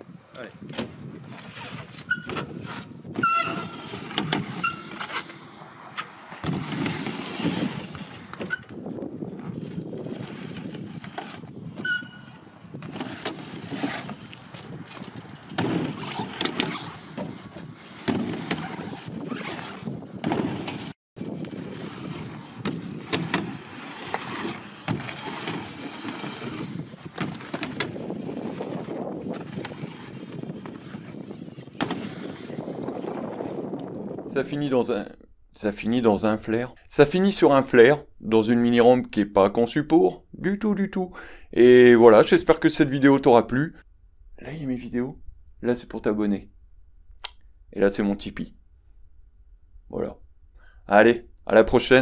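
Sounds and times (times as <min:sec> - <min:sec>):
brief squeaks: 0:01.3 - 0:05.4, 0:11.8 - 0:12.4
bike tyres rolling on ramp: 0:01.9 - 0:34.3.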